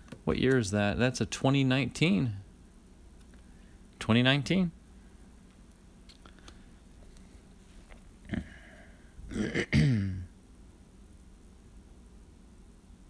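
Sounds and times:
man clearing his throat: 9.3s - 10.3s.

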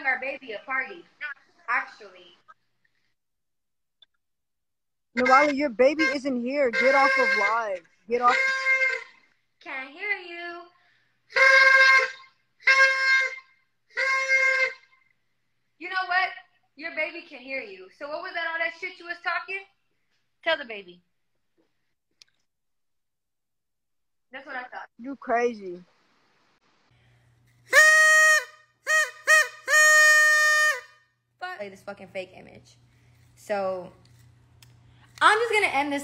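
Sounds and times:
paper party horn toots: 5.2s - 9.3s, 11.3s - 15.0s, 27.4s - 31.1s.

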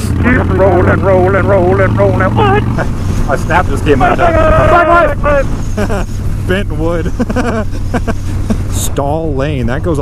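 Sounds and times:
motorcycle engine cruising: 0.0s - 10.0s
people talking and laughing: 0.3s - 9.3s
wind noise: 2.7s - 9.0s.

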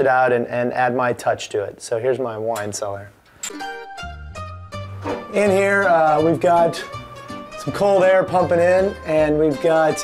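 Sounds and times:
plucked strings music: 3.5s - 8.8s.

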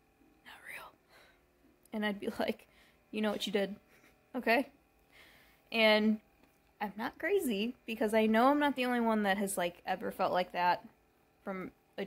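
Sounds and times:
woman breathing softly: 0.8s - 1.5s, 2.6s - 3.1s, 5.0s - 5.7s
woman speaking: 1.9s - 2.6s, 3.2s - 3.8s, 4.4s - 4.8s, 5.7s - 6.2s, 6.8s - 10.9s, 11.5s - 11.7s.

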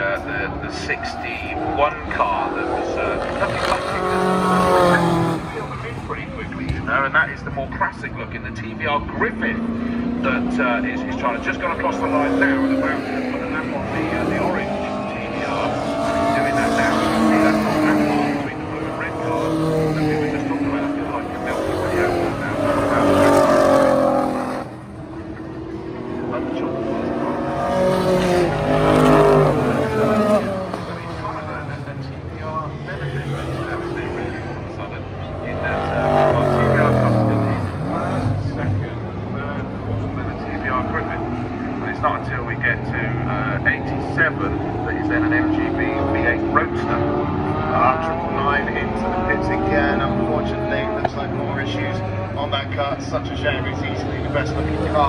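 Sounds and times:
racing car engines passing: 0.0s - 55.0s.

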